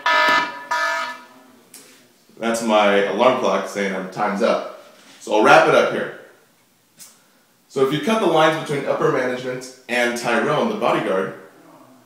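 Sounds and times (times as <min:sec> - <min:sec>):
alarm clock beeping: 0:00.0 - 0:01.4.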